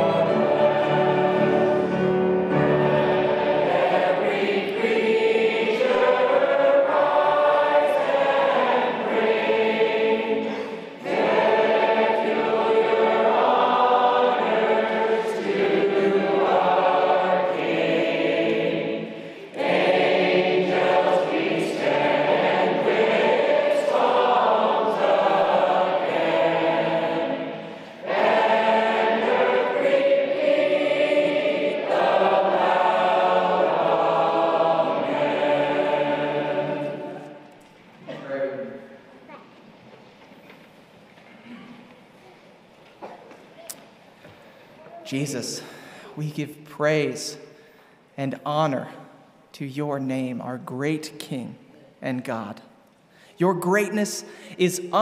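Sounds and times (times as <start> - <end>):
piano accompaniment: 0.0 - 10.2
congregation singing a hymn: 0.0 - 39.1, 44.2 - 52.7, 53.4 - 55.0.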